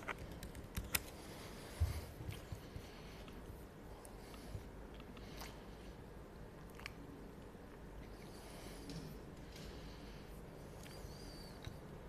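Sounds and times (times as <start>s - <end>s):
laptop keyboard typing: 0.0s - 1.2s.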